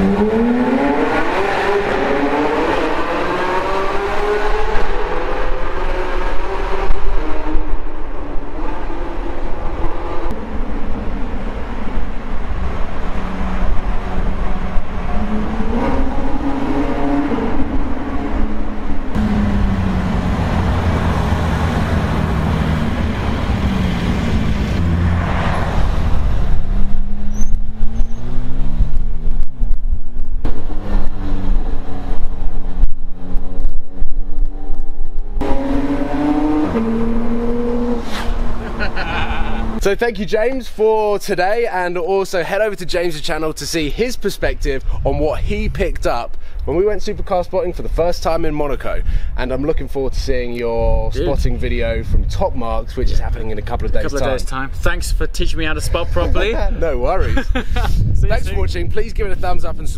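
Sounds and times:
car engine accelerating: 0.0s - 39.8s.

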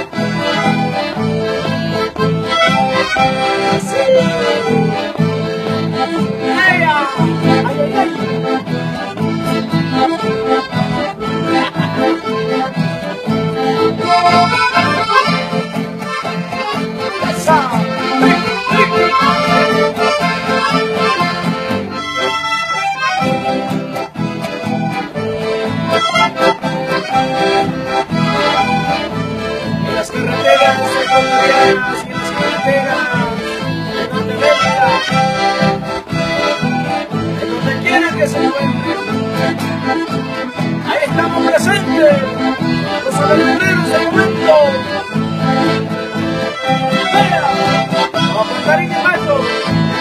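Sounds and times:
accordion dance music: 0.0s - 50.0s.

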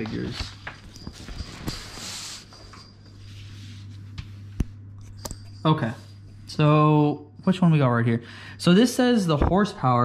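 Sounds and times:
paper rustling: 0.0s - 2.5s
low hum: 0.4s - 8.6s.

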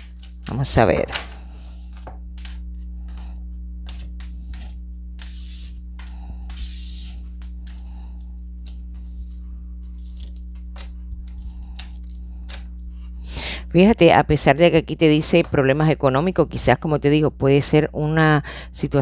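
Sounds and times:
low electrical hum: 0.0s - 19.0s
cards sliding on a table: 1.3s - 11.9s.

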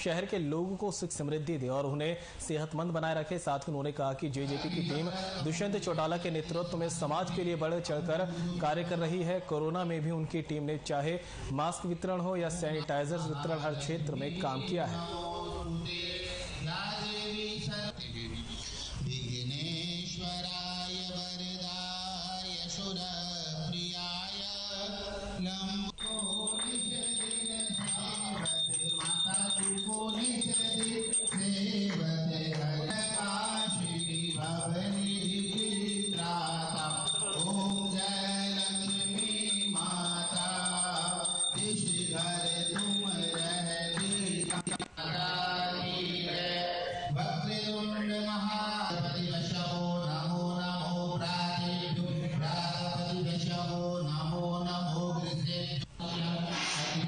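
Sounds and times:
man chanting into a microphone: 0.0s - 26.0s, 45.0s - 57.0s
high ringing tone: 26.0s - 31.9s, 32.9s - 44.9s.

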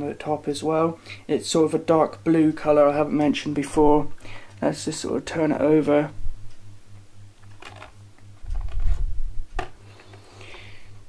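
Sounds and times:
faint low pulsing hum: 0.0s - 11.0s
camera handling rumble: 7.4s - 10.6s.

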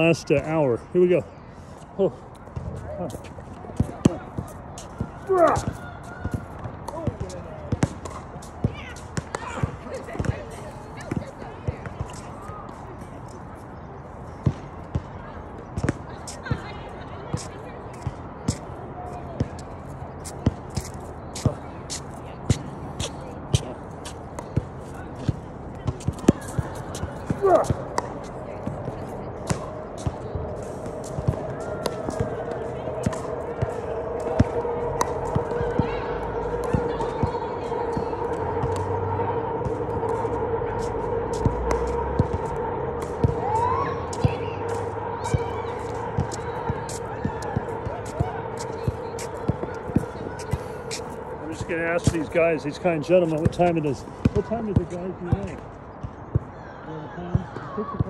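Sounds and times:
steady hum: 25.5s - 54.3s.

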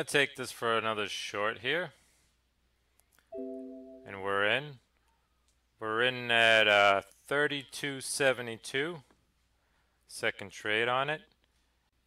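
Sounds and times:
electronic chime tone: 3.4s - 4.2s.

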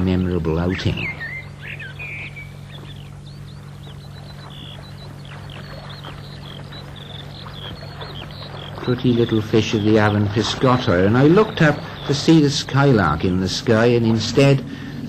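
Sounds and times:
skylark singing: 0.0s - 15.0s
steady low hum: 0.0s - 15.0s.

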